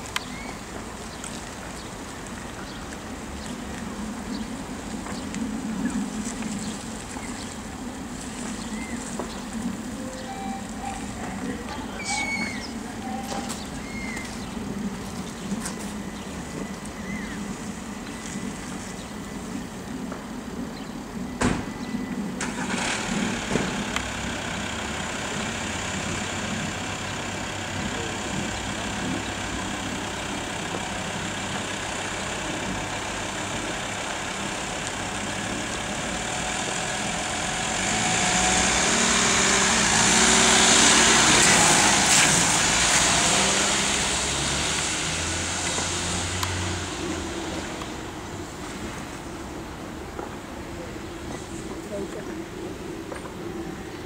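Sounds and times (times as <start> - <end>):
van driving off: 0.0 - 51.6
van engine idling: 21.8 - 41.3.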